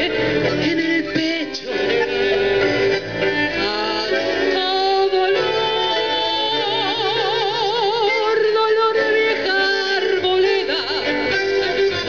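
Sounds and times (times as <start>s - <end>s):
tango ensemble playing: 0.0s - 12.0s
woman singing into a microphone: 3.5s - 12.0s.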